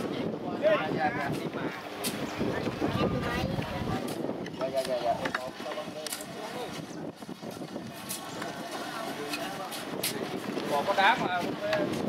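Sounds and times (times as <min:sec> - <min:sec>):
outdoor noise: 0:00.0 - 0:12.0
people talking indistinctly: 0:00.0 - 0:12.0.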